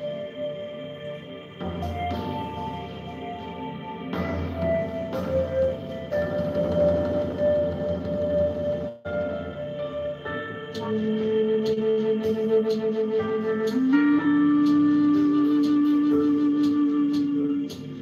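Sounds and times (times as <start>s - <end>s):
double flute drone and melody: 0.0s - 18.0s
soft ambient music: 0.0s - 18.0s.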